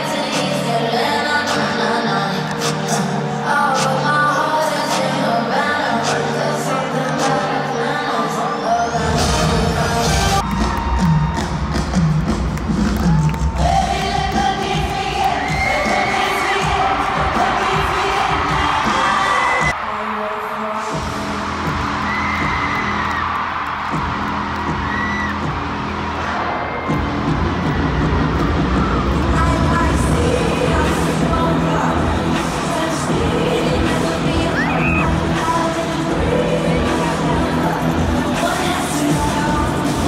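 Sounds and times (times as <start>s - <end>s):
amplified concert music: 0.0s - 40.0s
crowd cheering and screaming: 7.8s - 40.0s.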